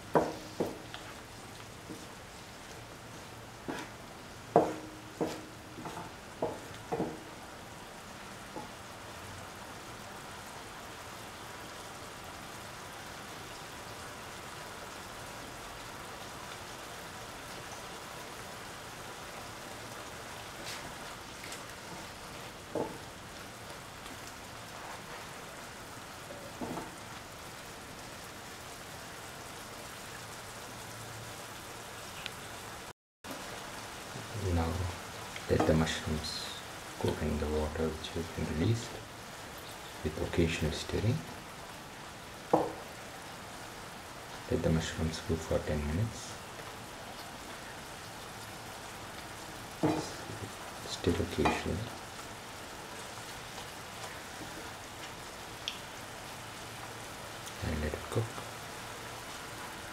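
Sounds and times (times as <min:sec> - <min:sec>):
vegetables sizzling in a pan: 0:00.0 - 0:59.9
spoon knocking against pan: 0:04.5 - 0:07.3, 0:42.5 - 0:42.8, 0:49.8 - 0:50.2.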